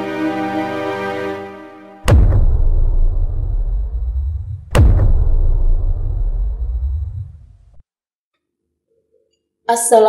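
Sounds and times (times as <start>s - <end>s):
sustained music chord: 0.0s - 2.2s
sudden deep boom: 2.0s - 7.8s
low rumble: 2.1s - 7.8s.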